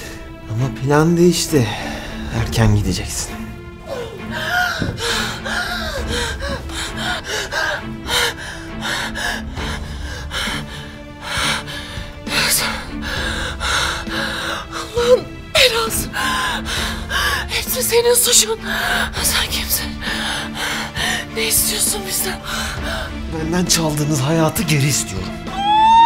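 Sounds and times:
background music: 0:00.0 - 0:26.0
woman strained cries: 0:03.8 - 0:08.4, 0:25.5 - 0:26.0.

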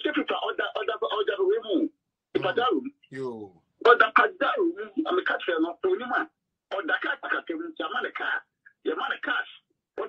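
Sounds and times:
person talking rapidly: 0:02.4 - 0:04.1.

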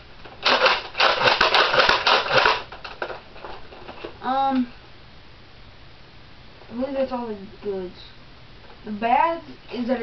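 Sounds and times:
plastic toy mechanism clattering: 0:00.4 - 0:03.2.

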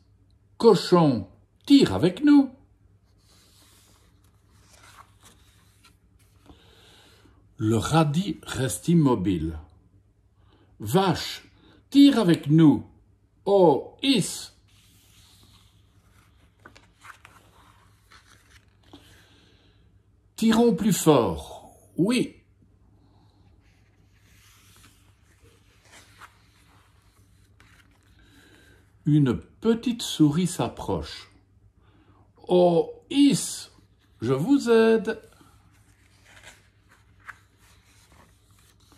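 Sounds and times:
book page turning: 0:03.1 - 0:06.6, 0:14.6 - 0:19.2, 0:23.6 - 0:28.4, 0:35.1 - 0:38.9.

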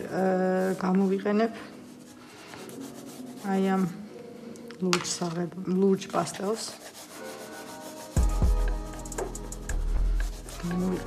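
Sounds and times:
oil pastel scratching on paper: 0:00.0 - 0:04.0, 0:06.0 - 0:08.6, 0:09.8 - 0:11.0
background music with deep bass: 0:07.6 - 0:11.0.

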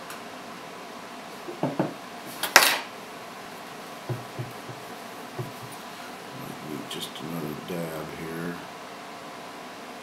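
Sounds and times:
tools knocking on wooden workbench: 0:01.5 - 0:02.0, 0:04.1 - 0:05.8.

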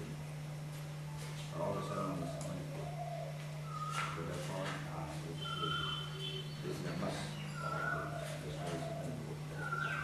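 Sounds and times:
steady low hum: 0:00.0 - 0:10.0
man speaking: 0:01.6 - 0:02.9, 0:06.6 - 0:09.8.

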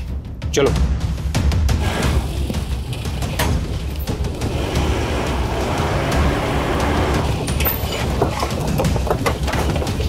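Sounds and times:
tyre noise: 0:01.8 - 0:10.0.

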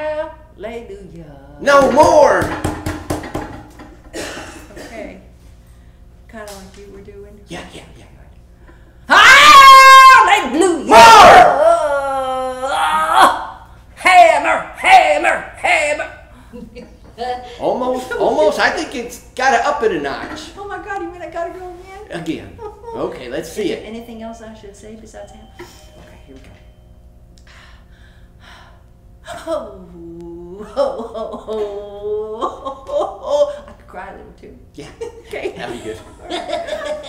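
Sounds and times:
woman crying out: 0:09.1 - 0:13.6.

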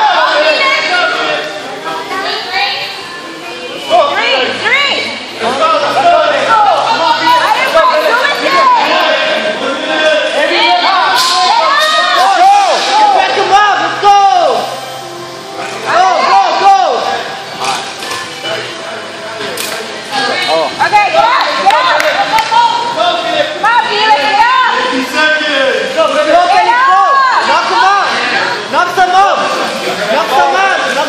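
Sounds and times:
voices shouting and cheering: 0:00.0 - 0:18.8, 0:19.9 - 0:31.0
background music: 0:00.0 - 0:31.0.

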